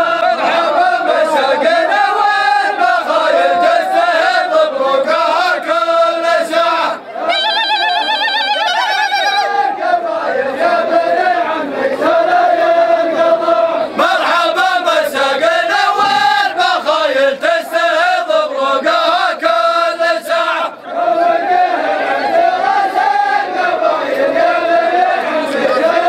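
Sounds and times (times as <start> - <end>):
men chanting in unison: 0.0 - 7.3, 9.4 - 26.0.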